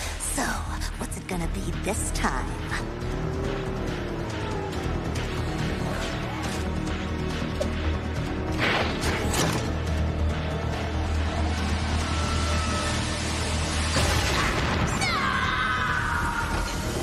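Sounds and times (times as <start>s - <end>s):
low droning music score: 0.0s - 17.0s.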